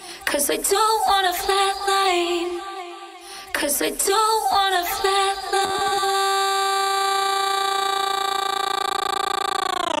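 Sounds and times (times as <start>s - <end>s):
long held synth tone: 5.6s - 10.0s.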